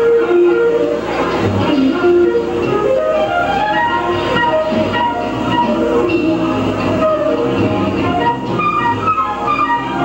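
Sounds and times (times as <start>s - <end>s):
bass: 0.0s - 10.0s
drums: 0.0s - 10.0s
woodwind melody: 0.0s - 10.0s.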